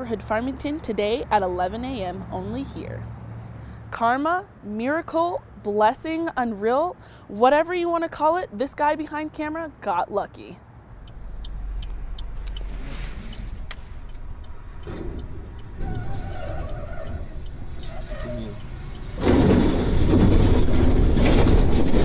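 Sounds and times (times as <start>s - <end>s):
truck rushing past: 10.9s - 22.0s
road and rain noise inside car: 11.1s - 14.6s, 15.2s - 20.3s
faint voices: 17.8s - 18.9s.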